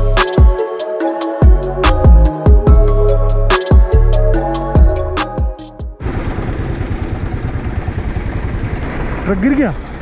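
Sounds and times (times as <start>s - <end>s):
background music: 0.0s - 6.0s
engine idling: 6.0s - 10.0s.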